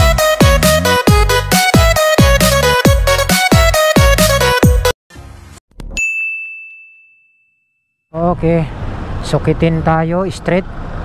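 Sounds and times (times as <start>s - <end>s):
bell-like chime ding: 5.9s - 8.1s.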